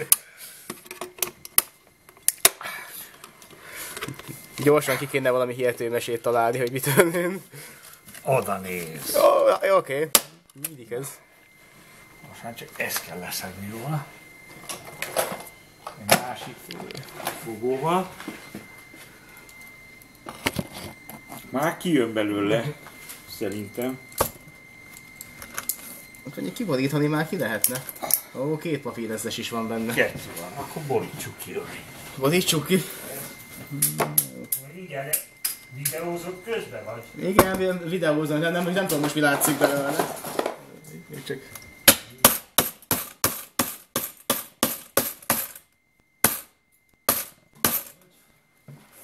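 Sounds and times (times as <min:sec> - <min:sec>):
hammer striking metal tin: 0:41.9 - 0:45.6, 0:46.2 - 0:46.5, 0:47.1 - 0:48.0.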